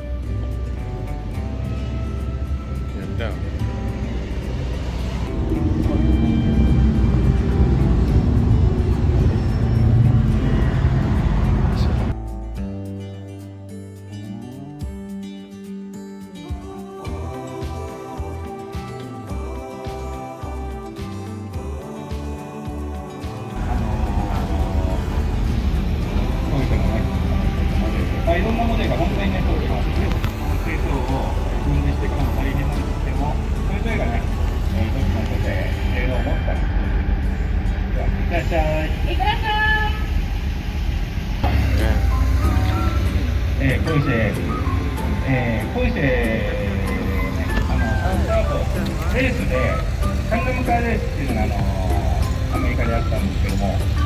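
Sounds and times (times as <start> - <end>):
car engines running: 0.0 - 12.2, 23.5 - 54.0
music playing: 0.0 - 54.0
voices: 16.7 - 40.5, 41.4 - 54.0.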